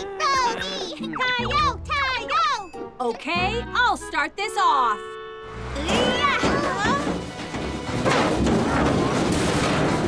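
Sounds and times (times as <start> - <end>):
barrel rolling across pavement: 5.9 - 10.0.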